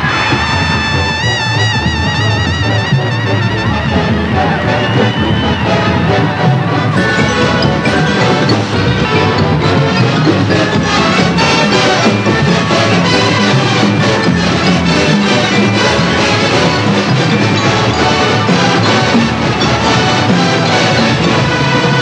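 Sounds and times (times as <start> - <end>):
brass bugles playing: 0.0 - 22.0
marching snare drums: 0.0 - 22.0.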